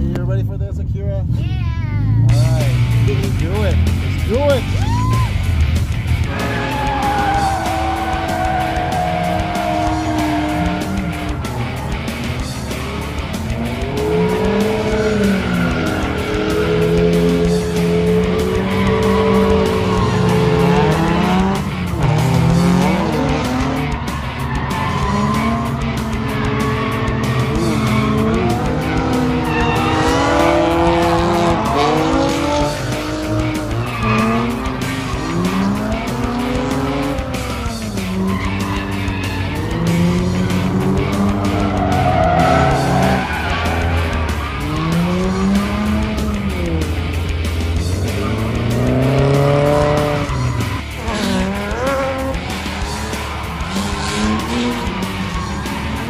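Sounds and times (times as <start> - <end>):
car engines revving: 0.0 - 56.0
tyres skidding and squealing: 0.0 - 56.0.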